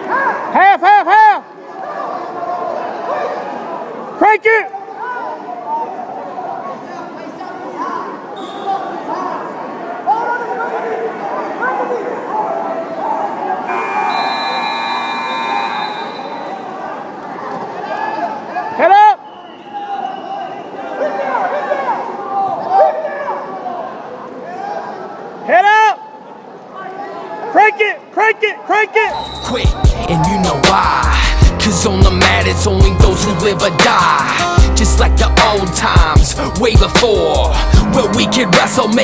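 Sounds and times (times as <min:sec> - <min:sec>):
coaches and spectators shouting: 0:00.0 - 0:39.0
buzzer sounding: 0:13.7 - 0:16.6, 0:29.1 - 0:30.1.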